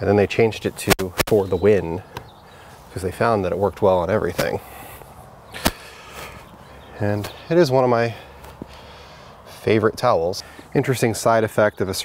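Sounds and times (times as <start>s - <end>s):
faint background hiss: 0.0s - 12.0s
sharp snap: 0.8s - 1.4s, 5.6s - 6.0s.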